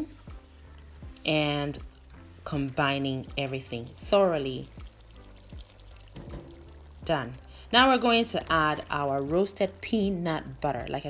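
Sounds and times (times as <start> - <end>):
quiet background music: 0.0 - 11.0
stew bubbling wetly: 0.4 - 8.8
soft knocks: 6.2 - 6.8.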